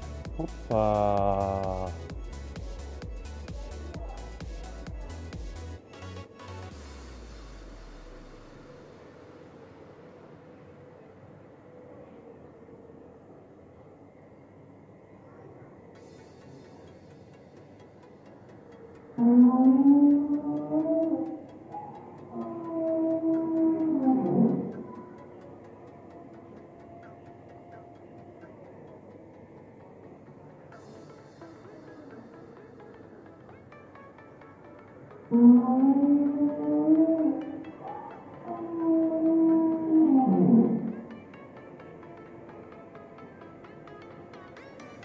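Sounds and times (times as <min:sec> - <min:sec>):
soft ambient music with chimes: 0:00.0 - 0:45.0
whale song over loudspeakers: 0:18.6 - 0:30.3, 0:35.3 - 0:45.0.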